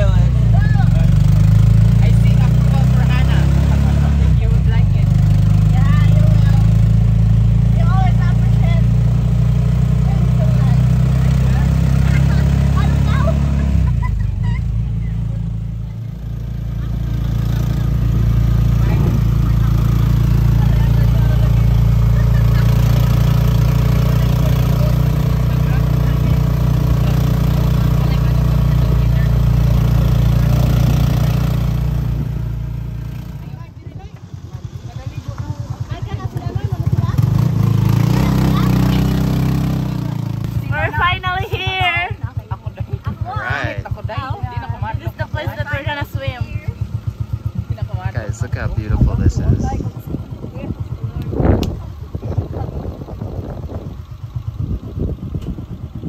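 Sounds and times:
car engine running from inside: 0:00.0 - 0:56.0.

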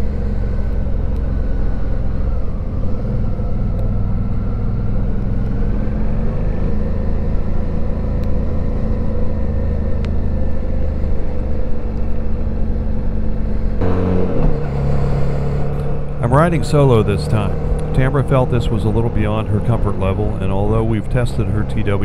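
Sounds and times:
motorcycle engine running: 0:00.0 - 0:22.0.

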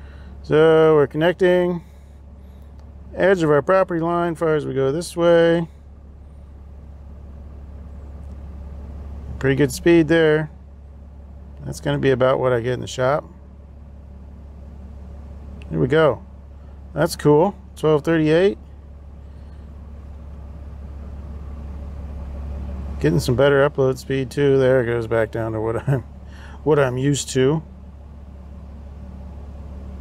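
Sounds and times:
truck engine idling: 0:00.0 - 0:30.0.

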